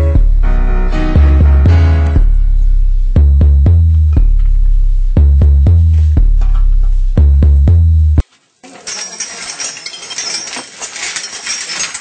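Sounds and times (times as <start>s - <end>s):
background music with bass beat: 0.0s - 8.2s
glass and metal objects clinking: 8.6s - 12.0s.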